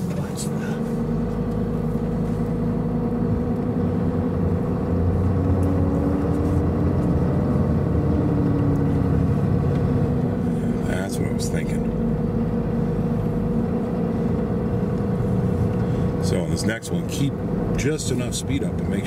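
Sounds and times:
diesel engine pulling: 0.0s - 19.0s.

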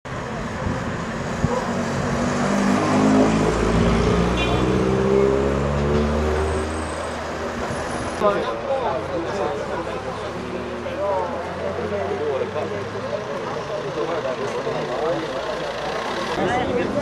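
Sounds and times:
cars driving past: 0.1s - 17.0s.

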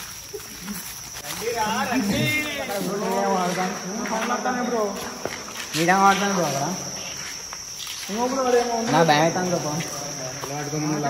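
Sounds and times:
crickets chirring: 0.0s - 11.0s
men's voices: 0.3s - 11.0s.

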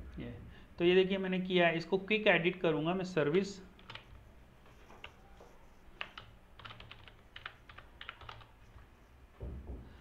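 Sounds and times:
computer keyboard typing: 3.8s - 5.2s, 6.0s - 8.7s.

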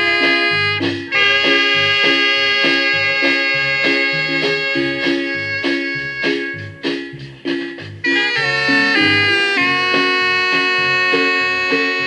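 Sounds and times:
saxophones holding long notes: 0.0s - 6.6s, 8.0s - 12.0s
marimba: 6.8s - 12.0s
electric bass pulse: 8.3s - 11.6s.

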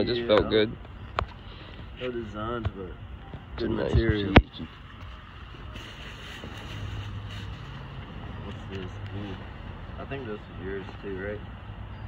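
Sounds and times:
plastic bags rustling: 5.5s - 8.8s.

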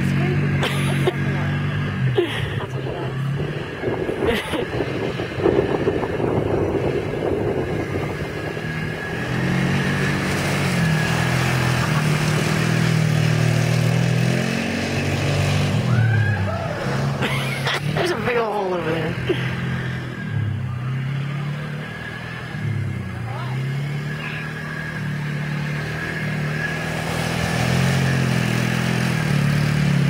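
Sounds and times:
quad bike engine revving: 0.0s - 30.0s.

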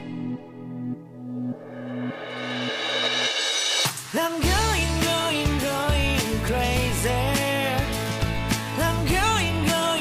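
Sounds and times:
cymbal swell: 1.4s - 4.2s
pop band with singing: 3.8s - 10.0s.

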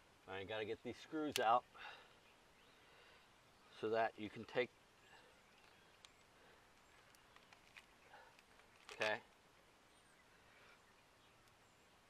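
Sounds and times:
faint clicks of handling plug: 1.3s - 1.5s, 5.6s - 6.3s, 7.0s - 9.2s.

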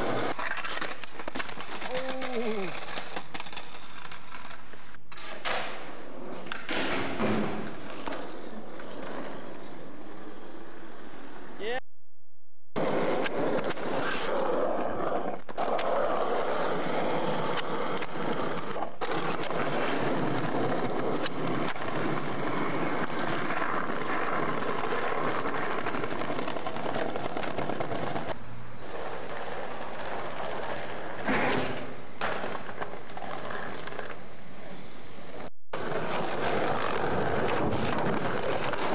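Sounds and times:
skateboard wheels rolling on asphalt: 0.0s - 11.6s, 12.8s - 38.9s.

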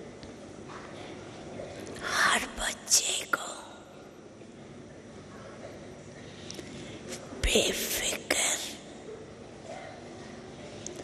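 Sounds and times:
woman whispering: 2.0s - 4.0s, 7.4s - 9.0s.

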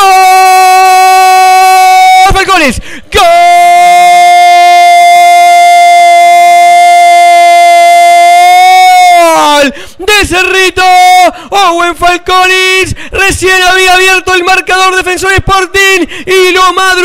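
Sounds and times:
commentator shouting goal: 0.0s - 4.8s, 9.1s - 17.0s.

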